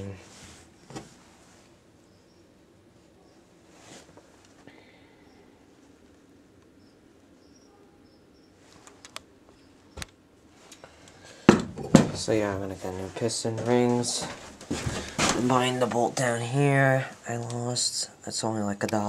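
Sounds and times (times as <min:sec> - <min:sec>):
loud thump: 0:11.5 - 0:12.3.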